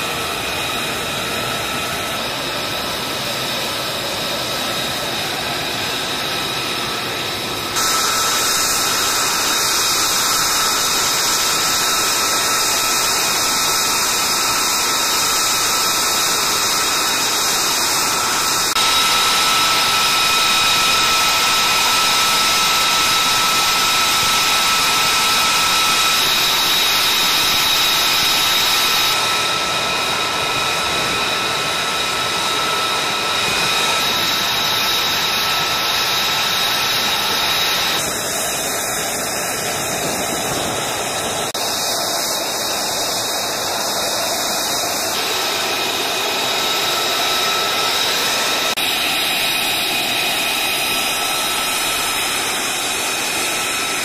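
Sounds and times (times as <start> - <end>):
high jet engine whine: 0.0 - 54.0
jet engine running: 0.0 - 54.0.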